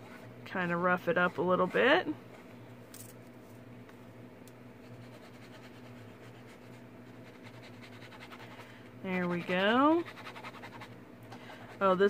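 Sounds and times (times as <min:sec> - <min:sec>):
ink pad scratching on foil paper: 0:00.0 - 0:02.4, 0:04.8 - 0:11.0
steady low hum: 0:00.0 - 0:12.0.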